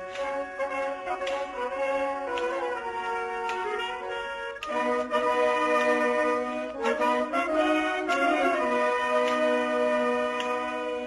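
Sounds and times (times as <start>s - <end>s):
wind band sustained chord: 0.0s - 11.0s.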